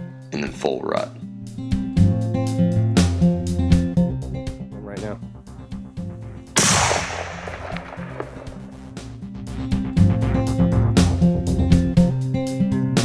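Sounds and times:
guitar background music: 0.0s - 13.0s
rifle shot with echo: 6.6s - 9.1s.

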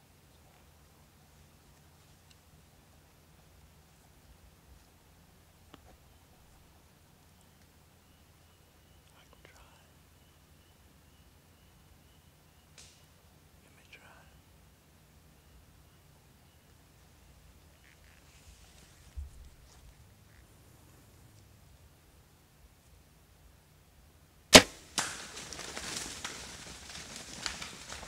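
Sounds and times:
faint clicks and rustles: 17.6s - 21.5s, 24.8s - 28.0s.

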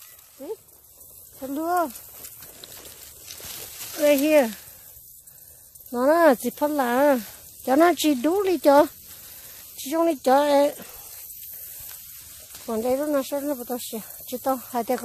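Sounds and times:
faint high hiss: 0.0s - 15.0s
person speaking: 1.4s - 2.0s, 3.9s - 4.6s, 5.9s - 9.0s, 9.8s - 11.0s, 12.6s - 15.0s.

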